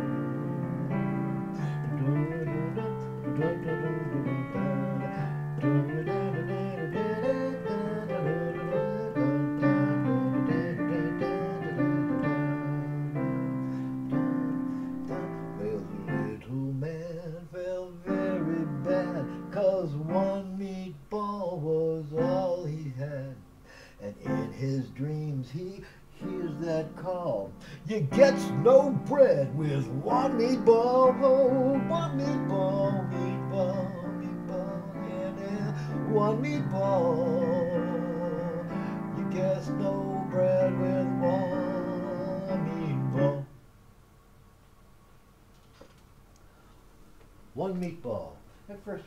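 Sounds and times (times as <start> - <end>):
digital piano playing: 0.0 - 21.4, 22.0 - 23.5, 24.1 - 25.4, 26.1 - 43.6.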